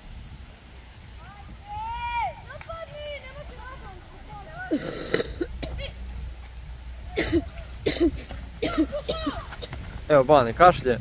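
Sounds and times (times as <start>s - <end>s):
low rumble: 0.0s - 11.0s.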